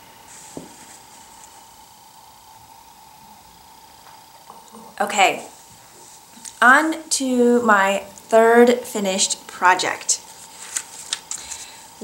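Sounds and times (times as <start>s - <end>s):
faint steady hum: 0.0s - 12.0s
rustle of knitted fabric: 10.2s - 11.6s.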